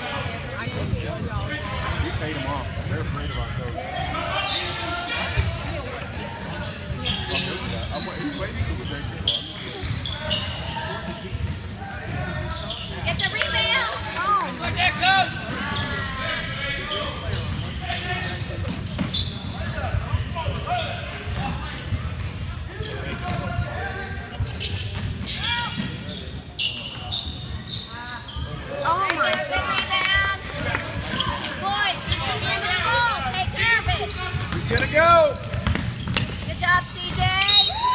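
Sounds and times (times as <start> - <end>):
voices echoing: 0.0 - 37.9
shoe squeals on court: 1.3 - 21.4, 22.2 - 29.2, 34.8 - 36.7, 37.4 - 37.9
basketball bouncing: 33.4 - 37.3.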